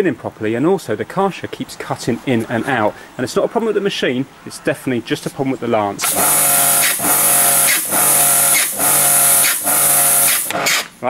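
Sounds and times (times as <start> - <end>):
water jet hissing: 6.0 - 10.8
pressure washer motor surging: 6.0 - 10.9.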